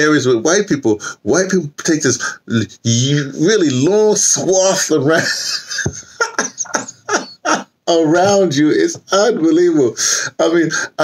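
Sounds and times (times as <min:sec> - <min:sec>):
man laughing hard: 0:05.2 - 0:07.8.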